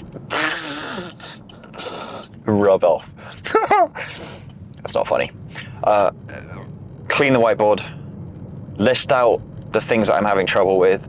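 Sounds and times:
man's stifled laugh: 0:03.4 - 0:04.2.

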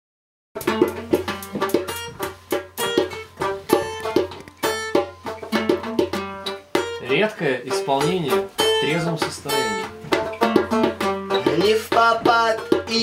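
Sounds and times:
acoustic guitar strumming chords: 0:00.6 - 0:13.0.

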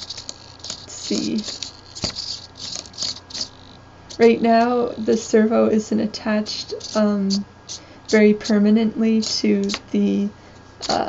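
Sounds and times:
servo whirring: 0:00.0 - 0:05.4, 0:06.5 - 0:09.9.

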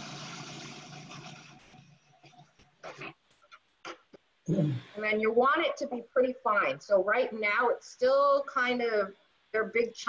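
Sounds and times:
food processor grinding: 0:00.0 - 0:01.8.

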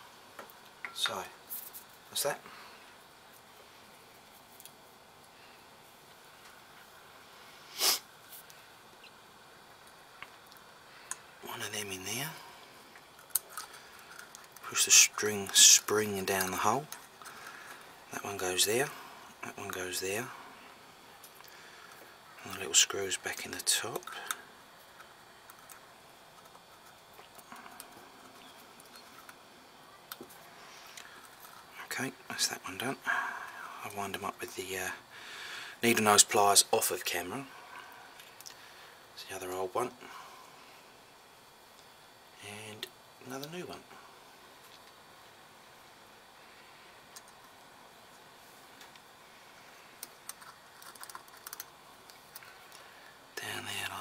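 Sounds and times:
faint steady hiss: 0:00.0 - 0:54.0.

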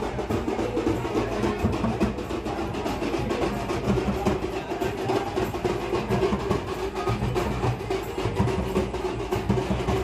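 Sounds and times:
drums playing rapid rhythm: 0:00.0 - 0:10.0.

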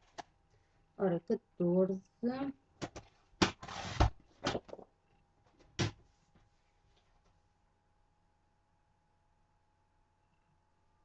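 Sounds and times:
blade scraping across card: 0:03.5 - 0:04.1.

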